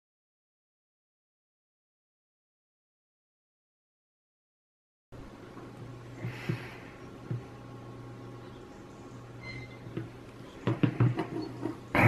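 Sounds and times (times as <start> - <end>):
circuit boards knocking on wooden table: 10.0 - 11.4.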